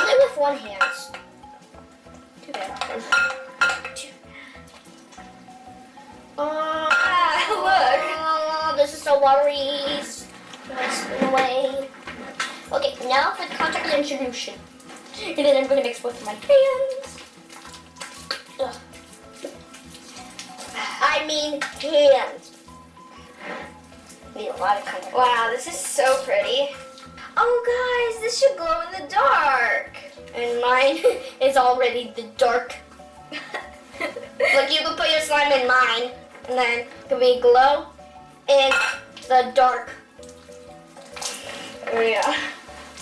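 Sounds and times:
quiet background music: 0.0 - 43.0
slime squelching: 11.8 - 27.4, 37.8 - 43.0.

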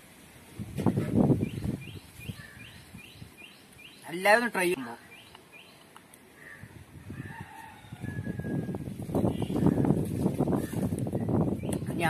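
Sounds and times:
faint bird calls: 1.5 - 4.1, 4.9 - 7.6.

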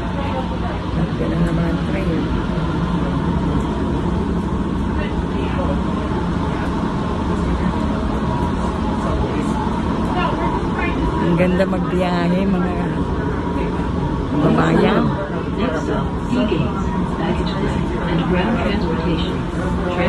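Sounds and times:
faint passenger voices: 0.0 - 20.0
train rumbling with hum: 0.0 - 20.0.

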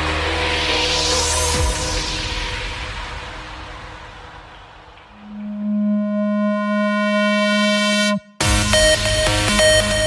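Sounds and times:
held synthesizer note: 5.2 - 10.0.

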